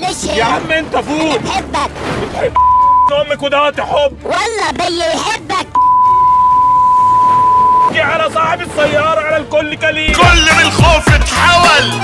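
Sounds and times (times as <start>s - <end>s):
high-pitched censor beep: 2.6s - 3.2s, 5.8s - 7.9s.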